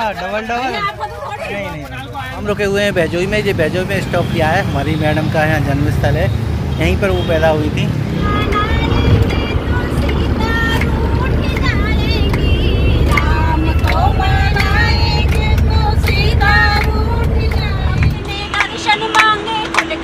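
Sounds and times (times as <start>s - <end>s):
minibus engine rumble: 0.0s - 20.0s
passengers chattering and calling: 0.0s - 20.0s.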